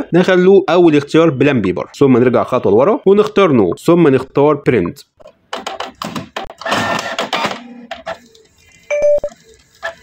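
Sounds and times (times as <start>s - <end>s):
printer whirring and clicking: 6.4s - 8.8s
short electronic beep: 8.9s - 9.4s.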